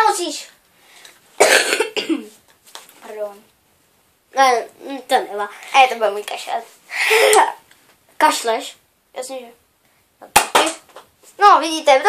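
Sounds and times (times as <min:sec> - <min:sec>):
boy coughing: 0:01.4 - 0:02.4, 0:06.9 - 0:07.6.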